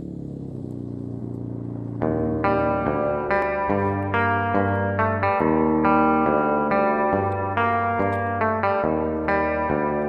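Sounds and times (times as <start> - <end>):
vehicle engine idling: 0.0 - 9.3.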